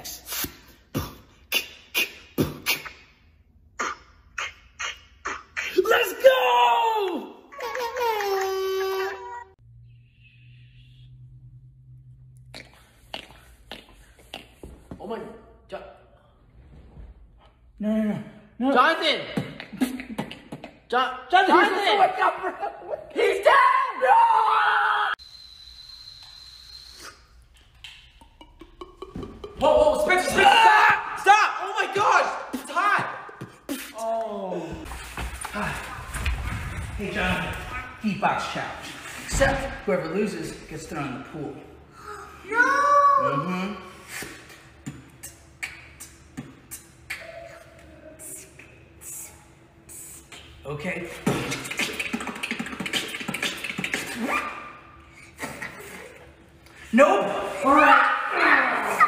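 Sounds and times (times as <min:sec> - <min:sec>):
man beatboxing: 0:00.0 - 0:03.0, 0:44.9 - 0:47.4, 0:51.3 - 0:54.5.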